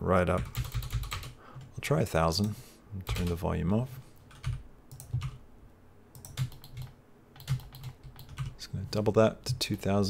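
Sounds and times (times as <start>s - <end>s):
computer keyboard keystrokes: 0.4s - 1.4s, 4.3s - 5.4s, 6.1s - 8.5s.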